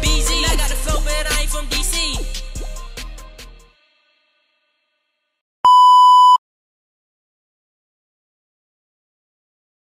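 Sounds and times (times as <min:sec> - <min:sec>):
loud electronic beep: 0:05.7 - 0:06.4.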